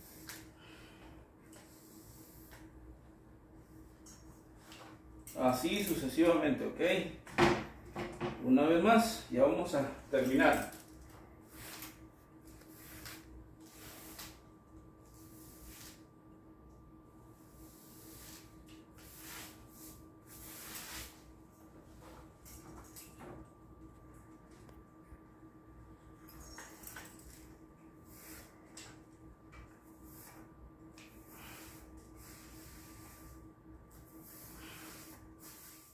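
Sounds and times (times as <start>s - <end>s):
faint steady hum: 0.0s - 35.9s
paint applicator swishing on wall: 11.5s - 16.1s, 17.4s - 21.4s, 29.6s - 35.9s.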